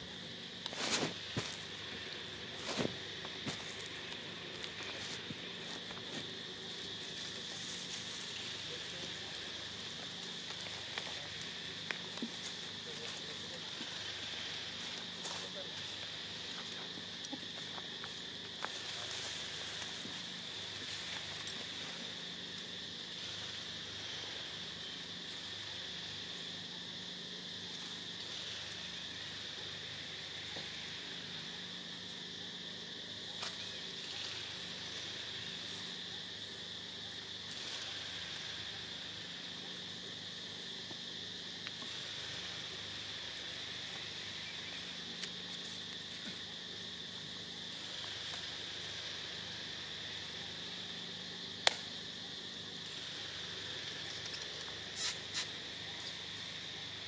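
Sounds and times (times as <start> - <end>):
insects buzzing: 0.0 - 57.0.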